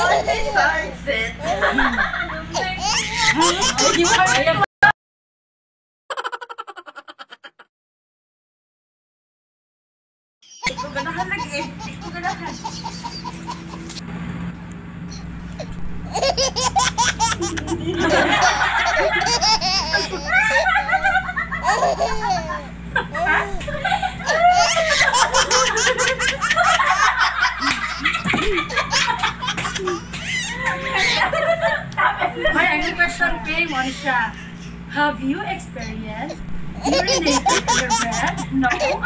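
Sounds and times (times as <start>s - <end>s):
women laughing: 0.0s - 4.7s, 6.1s - 7.7s, 10.6s - 14.0s, 16.1s - 34.9s, 35.8s - 39.0s
women talking: 0.0s - 4.7s, 10.6s - 13.9s, 17.5s - 26.9s, 30.5s - 39.0s.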